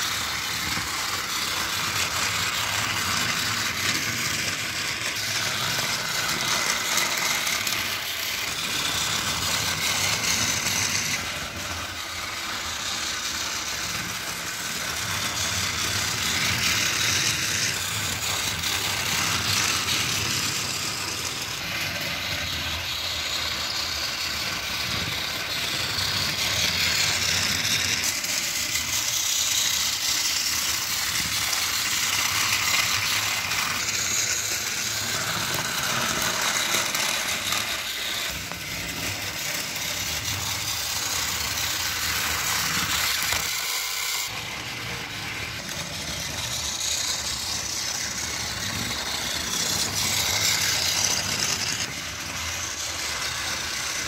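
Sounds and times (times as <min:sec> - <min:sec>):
toy train motor whirring: 0:00.0 - 0:54.0
toy train wheels rattling: 0:00.0 - 0:54.0.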